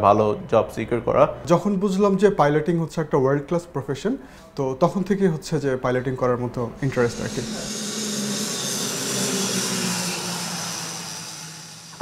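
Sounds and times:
turboprop aircraft passing low: 0:06.8 - 0:12.0.

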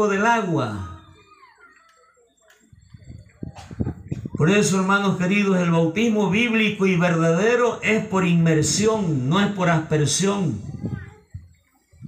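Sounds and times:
man preaching amplified: 0:00.0 - 0:01.2, 0:04.2 - 0:10.8.

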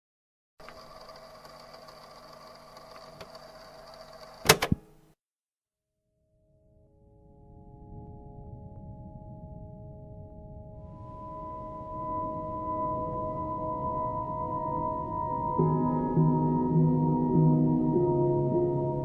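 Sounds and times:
soft music of held tones: 0:06.7 - 0:19.0.

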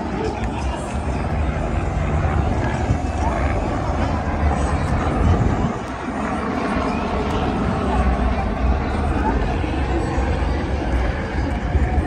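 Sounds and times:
crowd chatter: 0:00.0 - 0:12.0
helicopter rumble overhead: 0:00.0 - 0:12.0.

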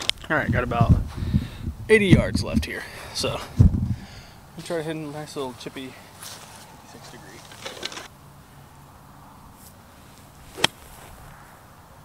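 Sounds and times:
golf club striking ball: 0:10.5 - 0:11.3.

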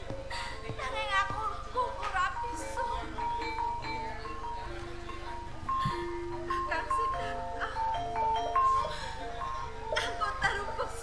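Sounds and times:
gamelan playing ringing notes: 0:00.0 - 0:11.0.

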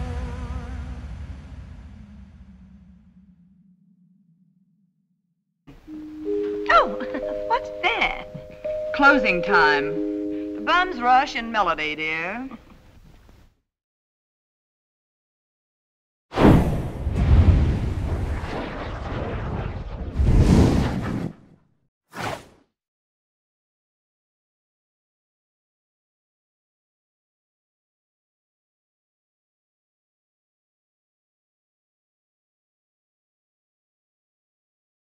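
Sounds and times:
background music with held notes: 0:05.7 - 0:11.5
woman's voice: 0:06.6 - 0:10.0, 0:10.6 - 0:12.6
deep boom: 0:16.4 - 0:21.0.

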